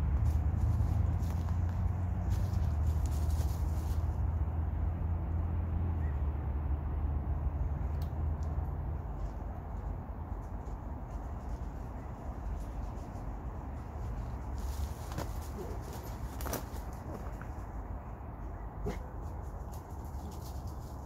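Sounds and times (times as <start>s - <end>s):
twigs and leaves crackling underfoot: 0.0s - 4.4s, 8.4s - 18.0s.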